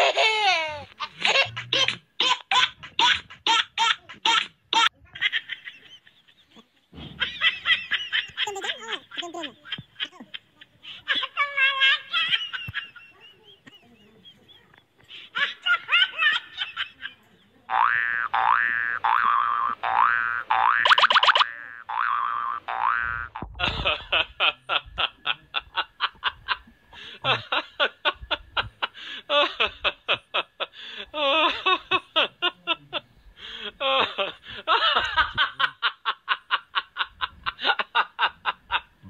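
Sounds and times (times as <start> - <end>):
cartoon boing springs: 17.8 - 23.4.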